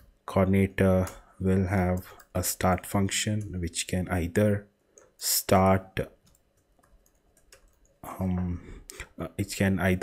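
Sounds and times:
keyboard keys clicking: 6.3 - 7.9.

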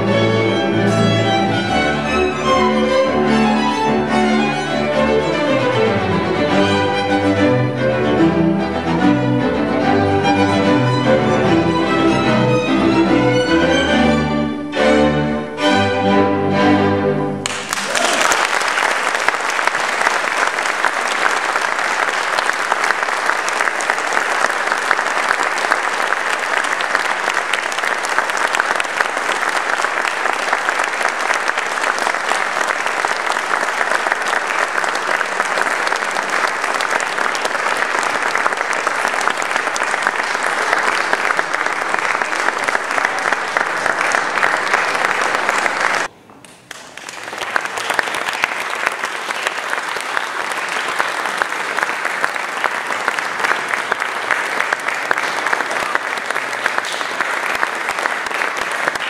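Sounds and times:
audience applauding: 17.4 - 59.0.

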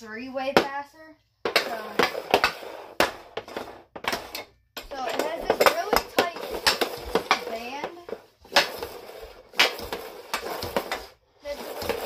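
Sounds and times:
hockey stick clacking puck: 1.5 - 12.0.

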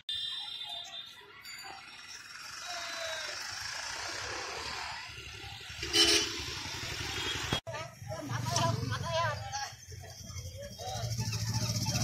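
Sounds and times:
road traffic passing: 0.8 - 12.0
vehicle horn: 5.8 - 6.5.

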